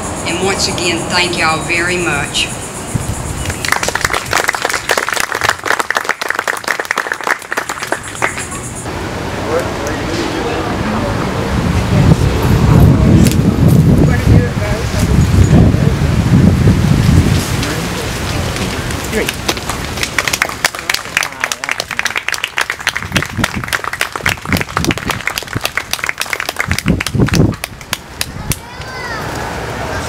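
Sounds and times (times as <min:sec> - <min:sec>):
group applauding: 0:03.4 - 0:08.9, 0:19.1 - 0:28.6.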